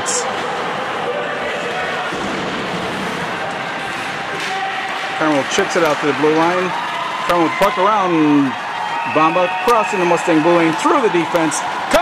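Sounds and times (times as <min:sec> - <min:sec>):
ice rink noise: 0:00.1 - 0:12.0.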